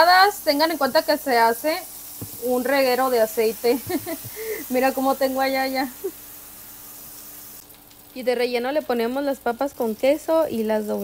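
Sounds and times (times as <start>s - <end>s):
tortillas sizzling in oil: 0.0s - 11.0s.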